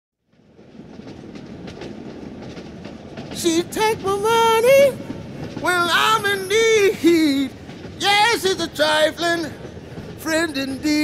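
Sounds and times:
rumbling clattering noise: 0.2 - 11.0.

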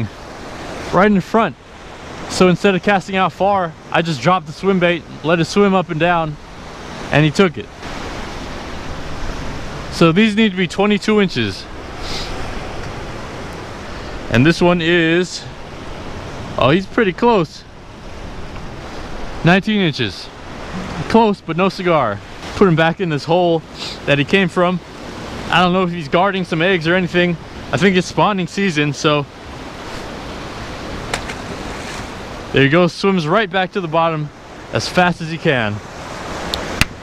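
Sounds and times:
ocean surf against rocks: 0.0 - 37.0
wind: 0.0 - 37.0.

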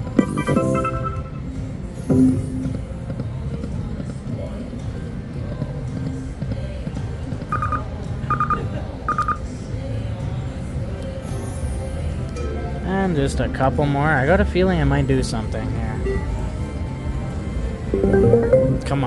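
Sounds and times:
slot machine game music: 0.2 - 1.4, 7.5 - 9.4, 17.9 - 19.0
slot machine spin effects: 0.2 - 1.4, 7.5 - 8.6, 17.9 - 19.0
casino din: 7.5 - 9.4, 17.9 - 19.0.

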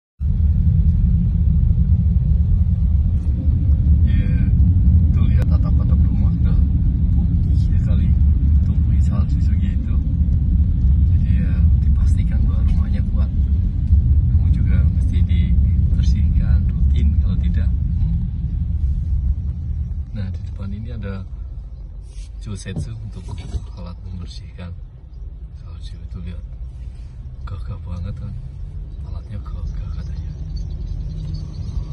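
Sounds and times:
car road and engine noise: 0.2 - 31.9.

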